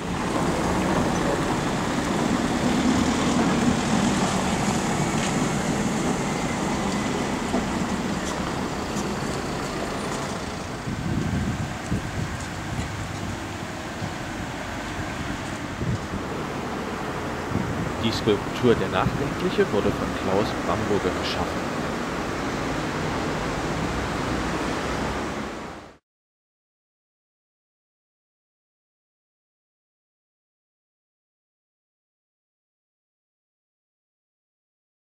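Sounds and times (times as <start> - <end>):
vehicle driving past: 0.0 - 19.0, 21.4 - 25.9
traffic hum: 0.0 - 26.0.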